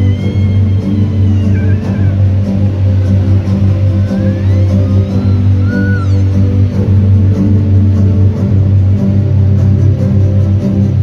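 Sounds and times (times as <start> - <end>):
music with heavy bass: 0.0 - 11.0.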